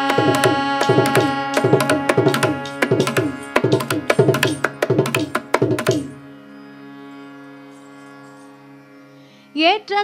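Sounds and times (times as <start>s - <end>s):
harmonium drone note: 0.0s - 10.0s.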